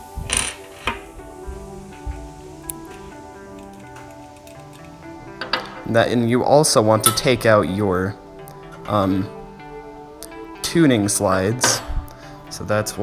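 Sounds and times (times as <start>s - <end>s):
background music with steady tones: 0.0s - 13.0s
metal caps clinking on wood: 3.5s - 5.9s.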